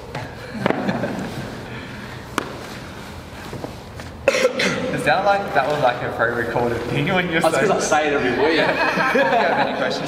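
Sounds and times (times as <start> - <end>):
group laughing and murmuring: 7.0 - 10.0.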